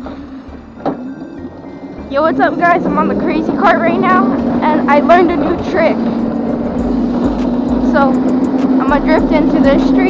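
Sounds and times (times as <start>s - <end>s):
electric kart motor hum: 0.0s - 10.0s.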